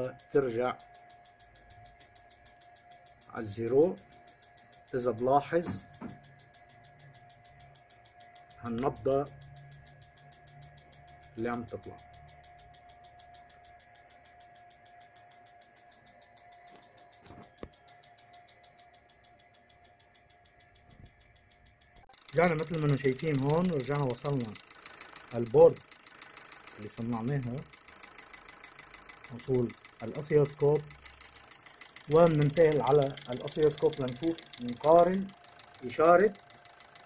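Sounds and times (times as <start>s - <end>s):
faint steady whine: 0.0s - 37.0s
fast faint ticking: 19.2s - 37.0s.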